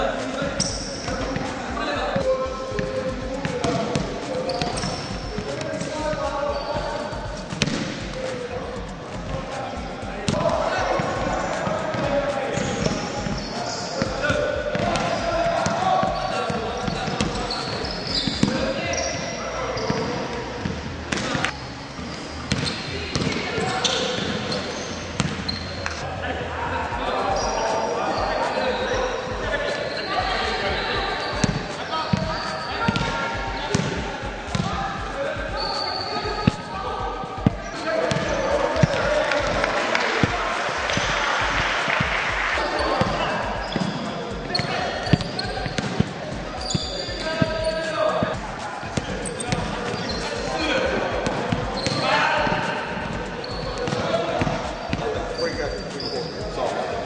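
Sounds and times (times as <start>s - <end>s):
players and coaches talking: 0.0s - 57.0s
basketballs bouncing on gym floor: 2.1s - 8.2s, 10.2s - 19.1s, 22.5s - 24.6s, 25.2s - 25.7s, 31.4s - 34.8s, 35.5s - 36.7s, 37.4s - 39.6s, 40.2s - 42.1s, 42.7s - 56.1s.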